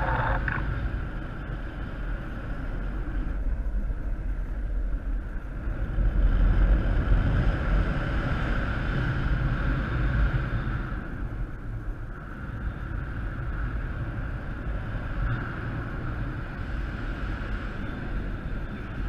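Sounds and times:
wind rushing over microphone: 0:00.0 - 0:19.0.

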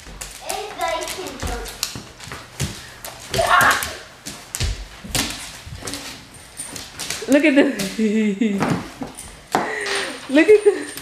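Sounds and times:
dog paws scrabbling on wood: 0:00.0 - 0:09.6.

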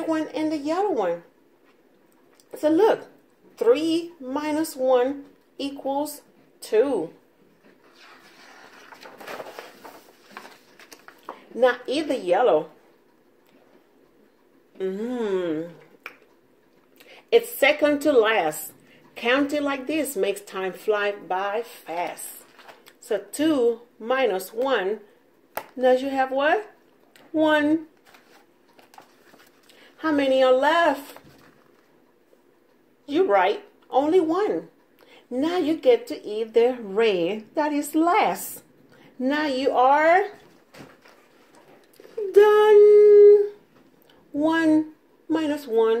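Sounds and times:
paper rustling page turned: 0:07.8 - 0:11.4, 0:22.4 - 0:22.8, 0:28.0 - 0:29.8, 0:31.0 - 0:31.9.

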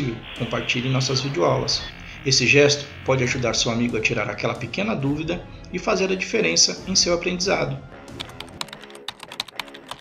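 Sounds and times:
soft background music: 0:00.0 - 0:10.0
keyboard typing clicks: 0:08.2 - 0:10.0.

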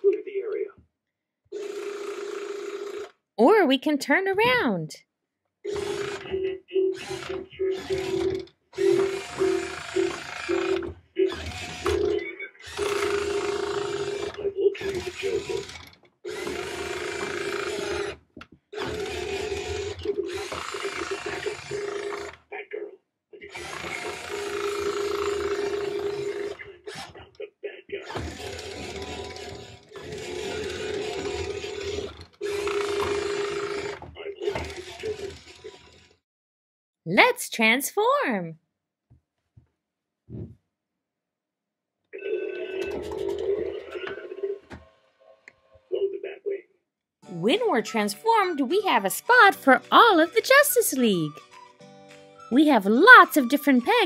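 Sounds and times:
toy truck motor whirring: 0:01.6 - 0:03.2, 0:05.6 - 0:06.4, 0:07.0 - 0:22.4, 0:23.4 - 0:27.2, 0:28.0 - 0:36.2.

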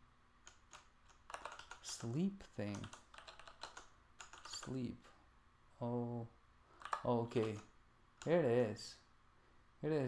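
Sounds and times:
computer keyboard keystrokes: 0:00.4 - 0:04.8, 0:06.8 - 0:08.4.

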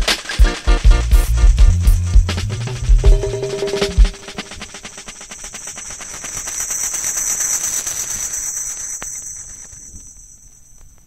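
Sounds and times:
high rapid percussion: 0:00.0 - 0:09.5.

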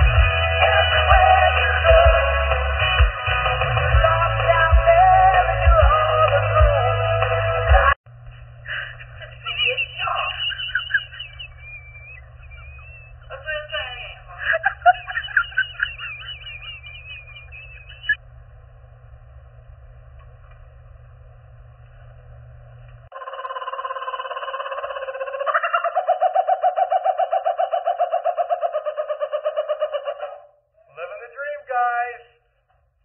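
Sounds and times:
kookaburra laughing call: 0:08.8 - 0:18.2, 0:23.1 - 0:30.6
person speaking: 0:30.9 - 0:32.4.

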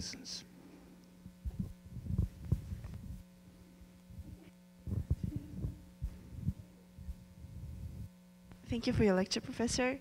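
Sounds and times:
sound system hum: 0:00.0 - 0:10.0
microphone handling thumps: 0:01.2 - 0:03.3, 0:04.1 - 0:08.2.

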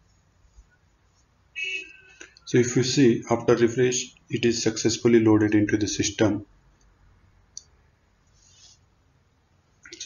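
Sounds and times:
soft rustle: 0:08.2 - 0:09.0.

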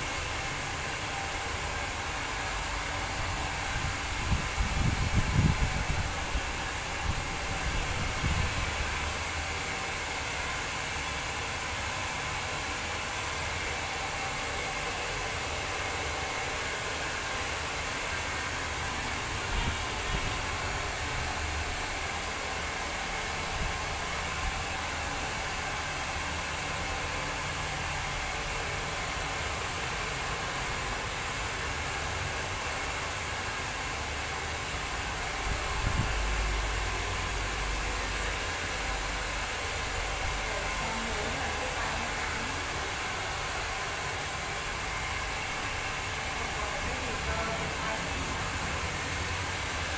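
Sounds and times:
hair dryer blowing: 0:00.0 - 0:49.9.

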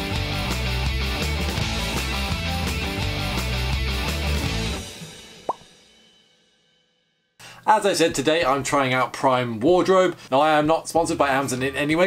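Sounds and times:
rock intro tune: 0:00.0 - 0:05.4.

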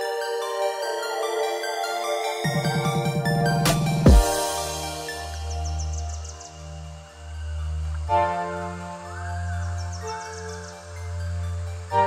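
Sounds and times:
sustained synth chords: 0:00.0 - 0:12.0.

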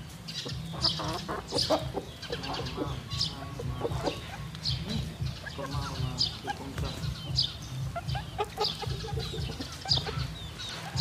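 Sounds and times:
chickens clucking: 0:00.0 - 0:11.0
small bird chirping: 0:00.0 - 0:11.0.

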